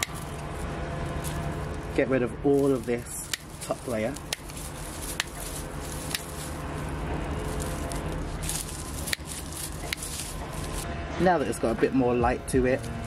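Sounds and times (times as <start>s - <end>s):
secateurs snipping stems: 0.0s - 1.8s, 2.5s - 10.8s.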